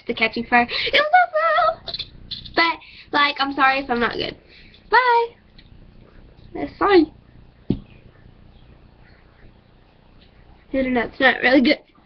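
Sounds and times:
faint steady hiss: 0.0 - 12.0.

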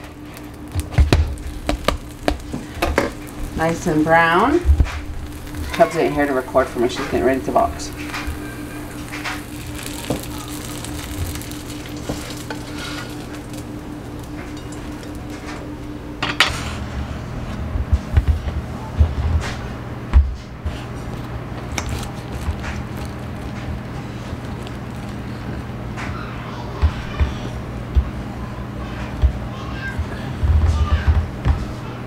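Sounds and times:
tortilla sizzling in frying pan: 0.0 - 16.8, 20.7 - 25.8
steady hum: 0.0 - 32.0.

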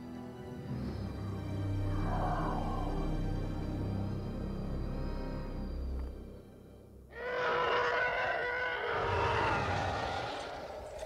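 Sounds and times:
ominous film score with low drones: 0.0 - 11.0.

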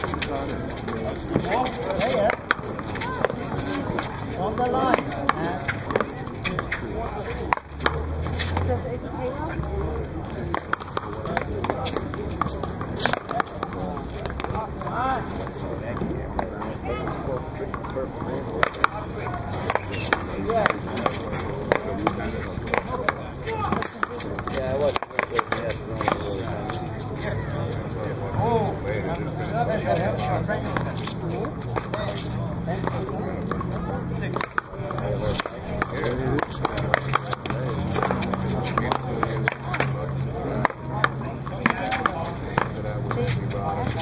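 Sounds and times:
players chattering: 0.0 - 44.0.

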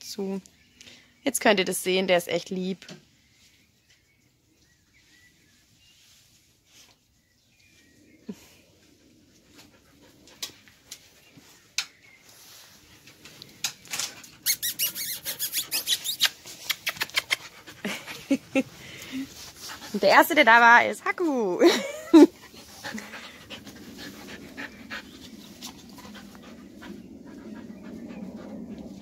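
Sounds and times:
puppies squeaking and yipping: 14.0 - 17.6.

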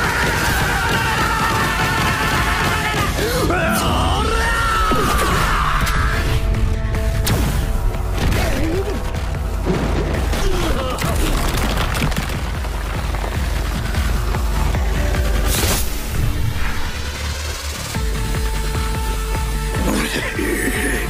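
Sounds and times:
battle music with heavy bass: 0.0 - 11.7, 12.4 - 21.0
impact sound effects: 4.9 - 12.6.

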